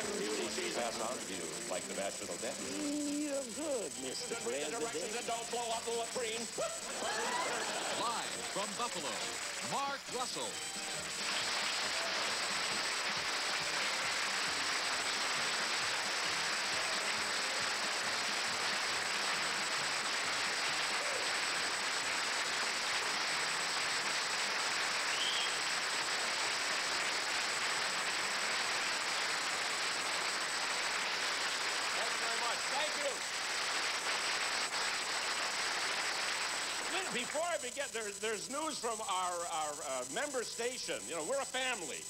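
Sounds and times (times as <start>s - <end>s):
audience applauding: 0.0s - 37.9s.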